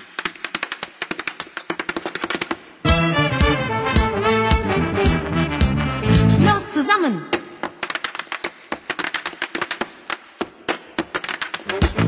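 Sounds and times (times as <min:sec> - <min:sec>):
tap shoes clicking on stage: 0:00.0 - 0:02.8, 0:07.3 - 0:12.0
band playing: 0:02.9 - 0:07.0.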